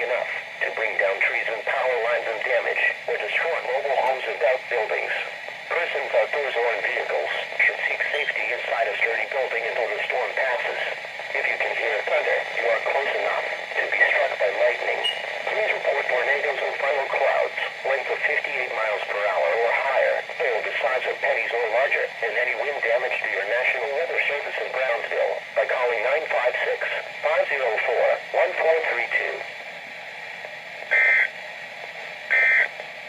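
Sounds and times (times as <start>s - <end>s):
voice from small radio speaker: 0.0s - 29.5s, 30.9s - 31.3s, 32.3s - 32.7s.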